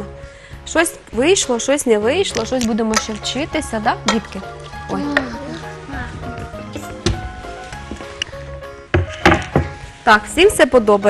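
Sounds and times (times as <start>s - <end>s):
music with sustained notes: 0.0s - 11.0s.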